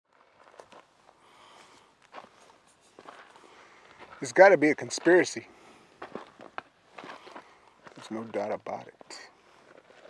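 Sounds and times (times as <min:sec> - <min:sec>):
faint footsteps: 0:00.1 - 0:10.0.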